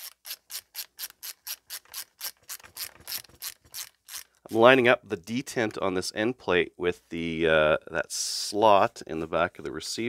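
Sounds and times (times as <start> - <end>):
ratcheting screwdriver clicking: 0.0 - 4.5.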